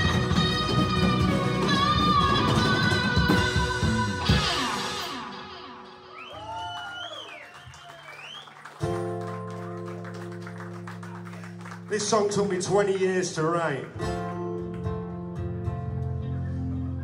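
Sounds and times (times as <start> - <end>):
audience whooping: 5.9 - 12.0.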